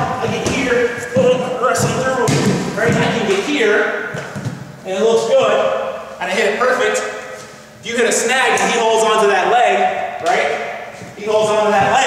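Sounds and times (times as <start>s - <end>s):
man talking: 0.0s - 4.0s, 4.8s - 7.2s, 7.8s - 12.0s.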